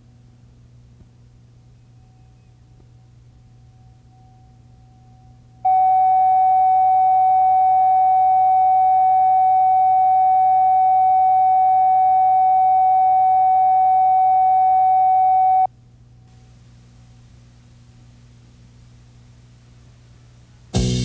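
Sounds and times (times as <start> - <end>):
faint low hum: 0.0 - 20.8
electronic reference tone: 1.8 - 15.7.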